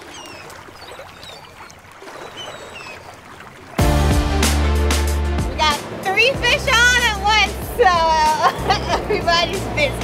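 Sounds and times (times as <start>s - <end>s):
water washing against hull: 0.0s - 10.0s
wind: 0.0s - 10.0s
music: 3.8s - 10.0s.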